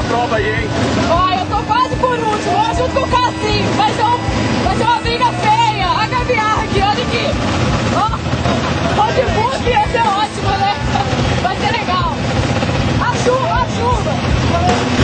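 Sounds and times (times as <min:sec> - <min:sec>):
motorcycle engines idling: 0:00.0 - 0:15.0
voices and laughter: 0:00.0 - 0:15.0.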